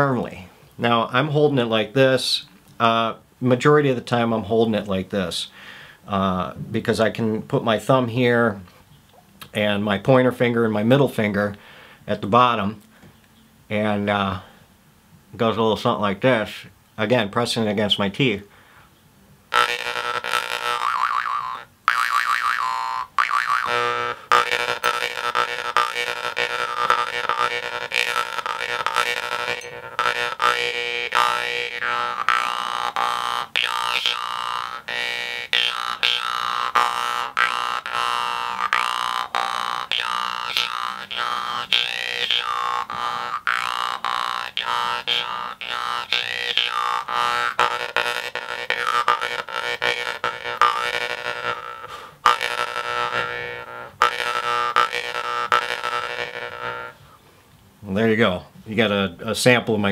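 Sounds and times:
jaw harp buzzing drone: 0:19.5 - 0:57.0.

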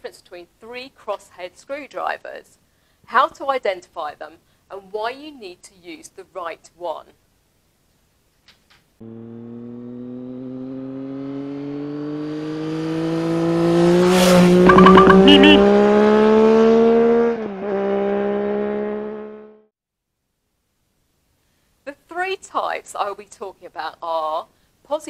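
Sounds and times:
engine revving sound effect: 0:14.4 - 0:16.0
short high chirps: 0:14.7 - 0:15.6.

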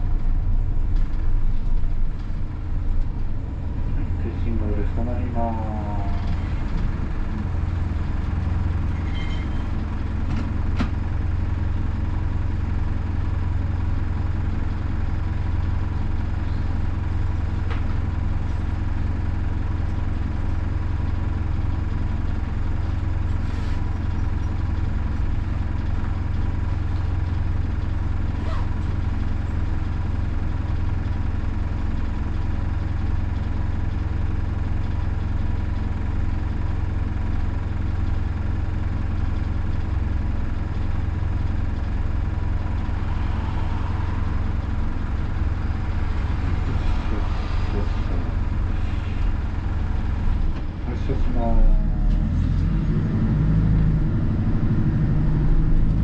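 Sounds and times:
diesel engine idling: 0:00.0 - 0:56.0.

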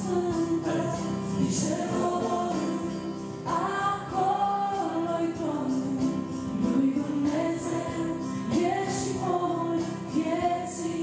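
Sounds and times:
electronic keyboard: 0:00.0 - 0:11.0
woman and man singing: 0:00.0 - 0:11.0.

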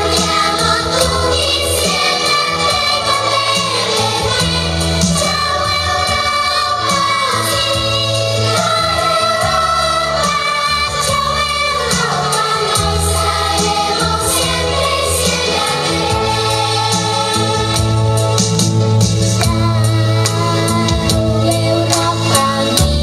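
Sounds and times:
children singing in chorus: 0:00.0 - 0:18.4
amplified backing track: 0:00.0 - 0:23.0.

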